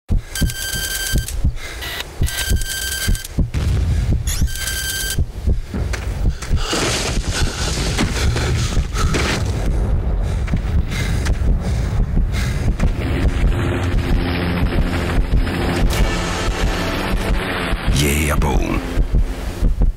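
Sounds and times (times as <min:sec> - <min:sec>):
low rumble with rushing wind: 0:00.1 - 0:19.9.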